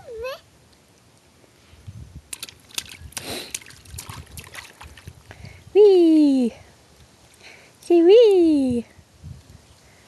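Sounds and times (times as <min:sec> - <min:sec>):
baby splashing water: 0:02.3 - 0:05.4.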